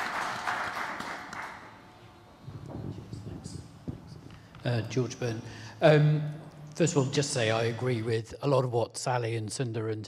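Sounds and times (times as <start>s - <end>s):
audience applause: 0.0s - 1.8s.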